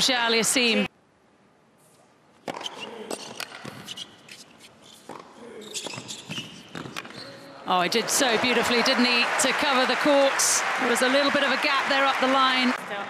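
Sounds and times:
tennis ball bouncing: 0:02.4 - 0:04.0, 0:05.0 - 0:07.2.

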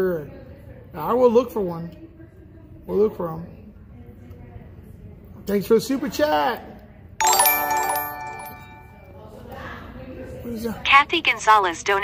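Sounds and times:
bright electronic chime: 0:07.2 - 0:09.1.

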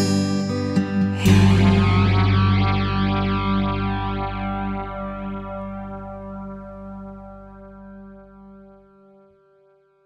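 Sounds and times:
guitar chord ringing: 0:00.0 - 0:09.7
bass: 0:00.0 - 0:09.8.

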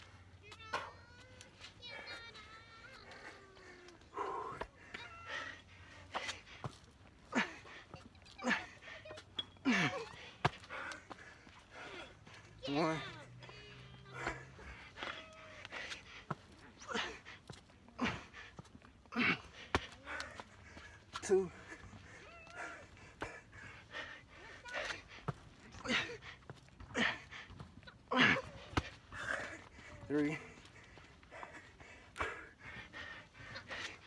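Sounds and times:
man breathing hard: 0:13.4 - 0:34.0.

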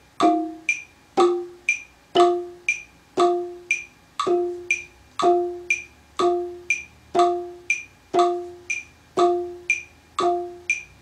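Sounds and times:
wooden xylophone struck with mallets: 0:00.2 - 0:11.0.

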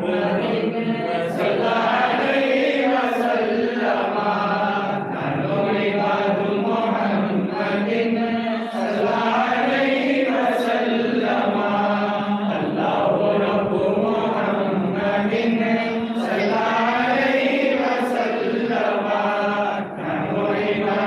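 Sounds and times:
men chanting together: 0:00.0 - 0:21.0.

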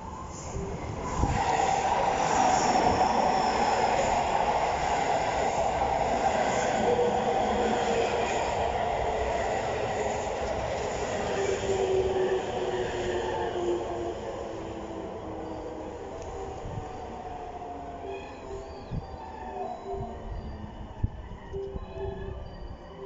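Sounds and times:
train wheels rumbling on rail: 0:00.0 - 0:17.4
faint train whine: 0:00.0 - 0:23.0.

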